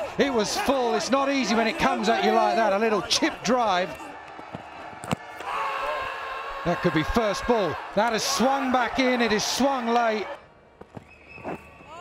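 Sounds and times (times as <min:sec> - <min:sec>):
fielders shouting appeal: 0:00.0 - 0:04.0
crowd noise: 0:00.0 - 0:12.0.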